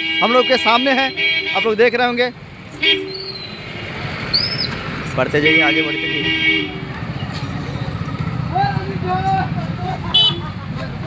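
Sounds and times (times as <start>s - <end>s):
street and crowd noise: 0.0s - 11.0s.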